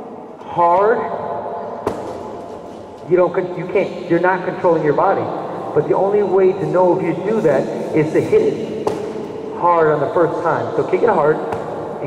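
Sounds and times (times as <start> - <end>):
background noise of large hall: 0.0 - 12.0
kick striking kick pad: 1.8 - 2.4, 8.8 - 9.2.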